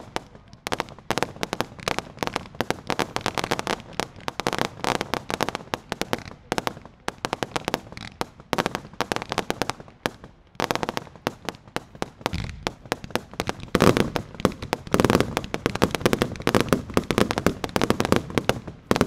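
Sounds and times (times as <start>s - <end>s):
fireworks bangs and crackle: 0.0s - 19.0s.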